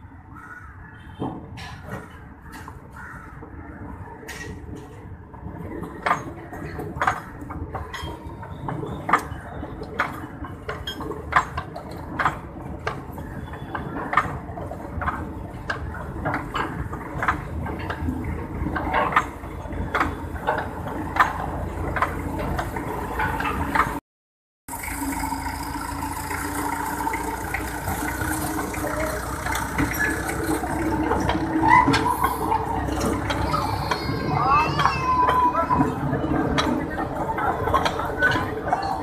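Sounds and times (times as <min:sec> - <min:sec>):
train rumble: 0:00.0 - 0:24.0, 0:24.7 - 0:39.0
wheel clicks over rail joints: 0:01.1 - 0:24.0, 0:24.7 - 0:39.0
children's voices: 0:30.2 - 0:39.0.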